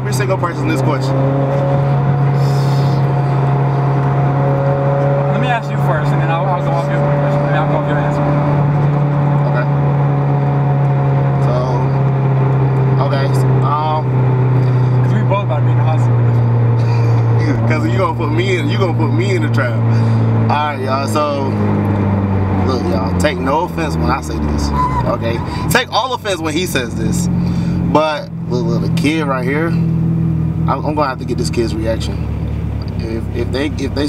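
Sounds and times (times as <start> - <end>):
car engine and road drone: 0.0 - 34.0.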